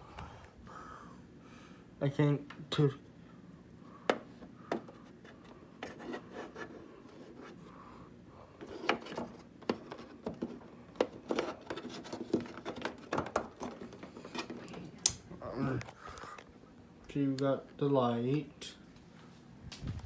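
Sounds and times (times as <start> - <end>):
cable plug scraping on plastic: 4.7 - 7.6, 8.6 - 14.6.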